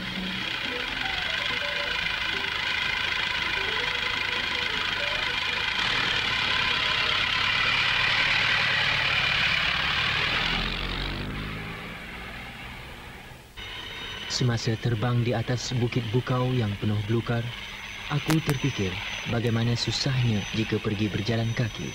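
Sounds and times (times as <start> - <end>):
engine running: 0.0 - 21.9.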